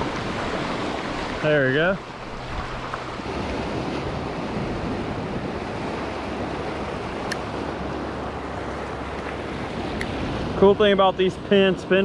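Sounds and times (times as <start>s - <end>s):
small waves breaking on sand: 0.0s - 12.0s.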